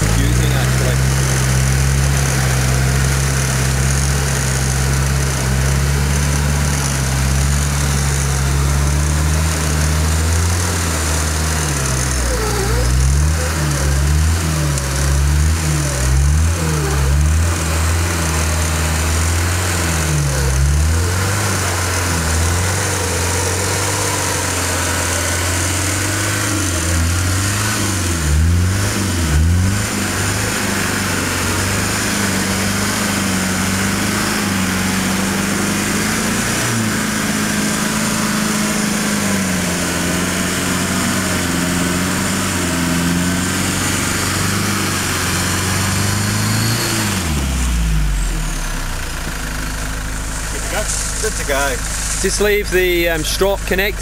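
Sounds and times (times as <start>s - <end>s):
vehicle engine running under load: 0.0s - 54.0s.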